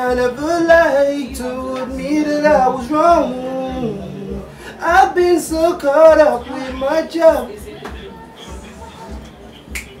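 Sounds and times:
backing beat of low thumps: 0.1 - 6.9
finger snap: 9.2 - 10.0.

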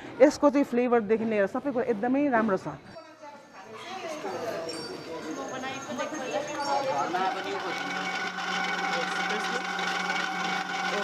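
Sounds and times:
faint voices: 2.9 - 10.1
potter's wheel motor humming: 4.0 - 11.0.

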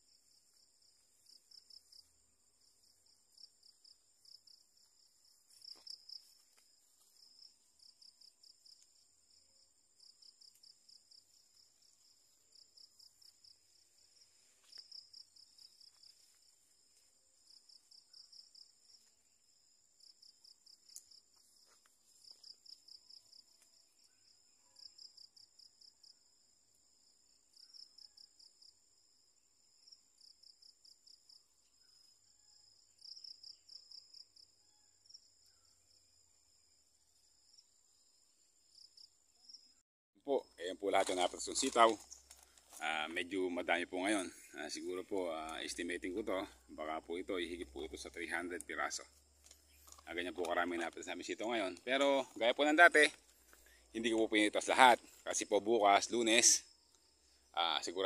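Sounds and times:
rapid high insect chirps: 0.0 - 58.0.

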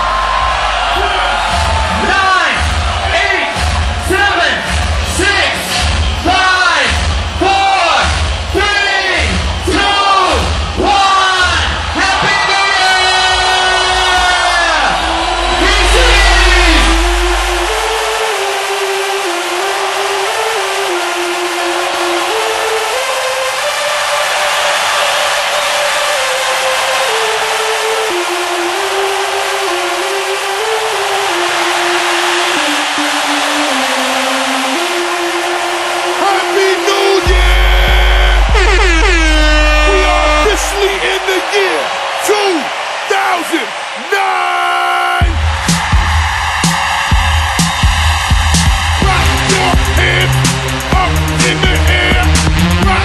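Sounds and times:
heavy bass: 0.0 - 8.6, 13.3 - 18.2, 37.3 - 41.3, 45.2 - 53.0
loud club music: 0.0 - 53.0.

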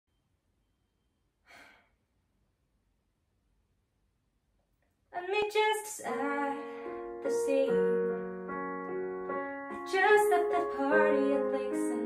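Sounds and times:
woman taking short breath: 1.5 - 2.0.

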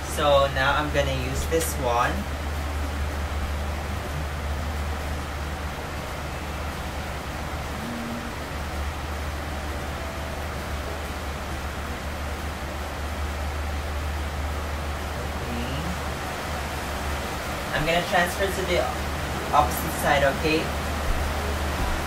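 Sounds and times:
air conditioner humming and hissing: 0.0 - 22.0.

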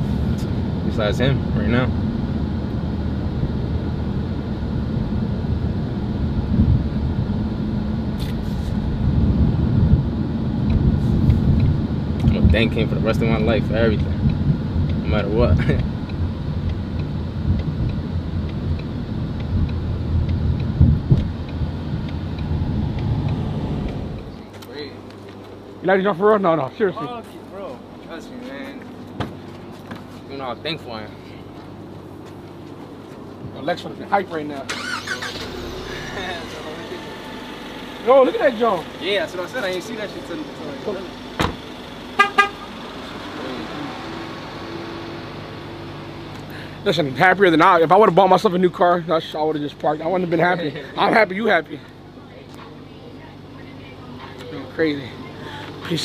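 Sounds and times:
car engine and road rumble: 0.0 - 56.0
car horn chirps: 42.1 - 42.7.

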